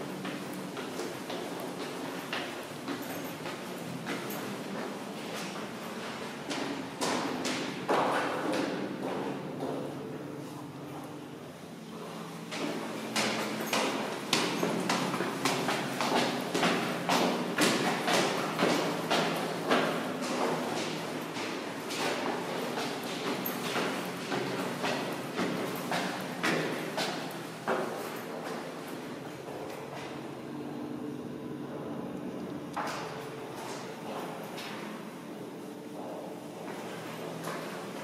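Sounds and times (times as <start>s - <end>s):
low background hum: 0.0s - 38.0s.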